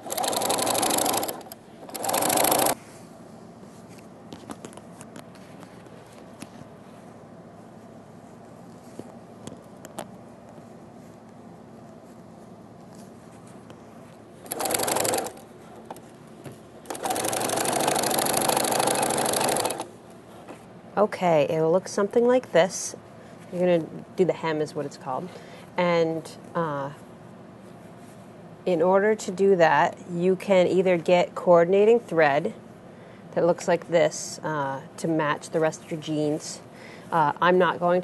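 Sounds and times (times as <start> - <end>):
sewing machine stitching: 0.0 - 2.8, 14.4 - 15.4, 16.9 - 19.9.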